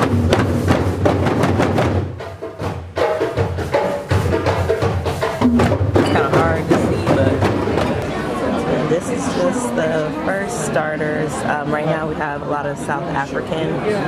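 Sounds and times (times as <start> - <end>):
djembe hand drums: 0.0 - 8.8.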